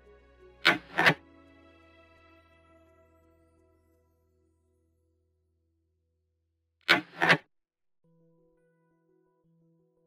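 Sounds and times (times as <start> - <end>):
sharp game piece clack: 0.7 - 1.2.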